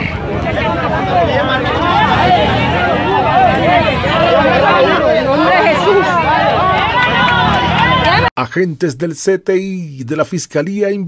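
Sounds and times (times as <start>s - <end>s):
crowd shouting and talking: 0.0s - 8.3s
motorcycle engines running: 0.0s - 8.3s.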